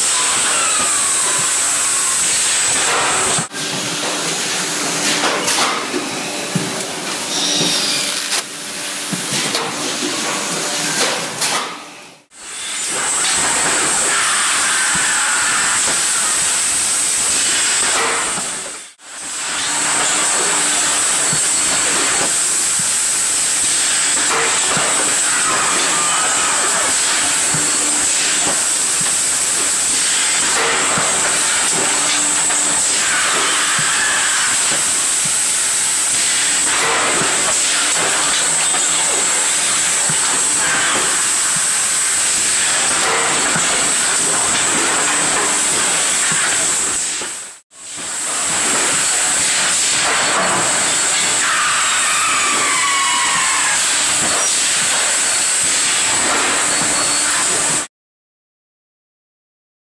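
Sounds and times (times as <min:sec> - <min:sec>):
high-pitched machine whine: 0:00.0 - 0:11.3, 0:12.0 - 0:57.7
loud steady air hiss: 0:00.0 - 0:57.9.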